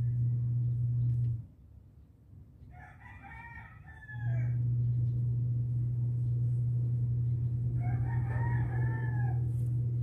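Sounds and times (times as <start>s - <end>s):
steady low hum: 0.0s - 2.8s, 3.6s - 10.0s.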